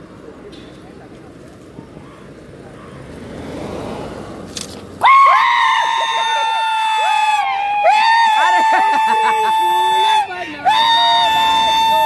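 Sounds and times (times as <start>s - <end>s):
car passing by: 0.2s - 5.1s.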